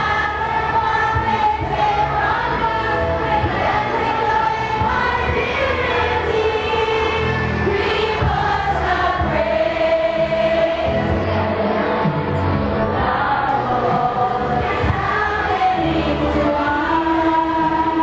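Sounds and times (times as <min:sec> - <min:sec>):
women singing in chorus: 0:00.0 - 0:12.1, 0:12.8 - 0:18.0.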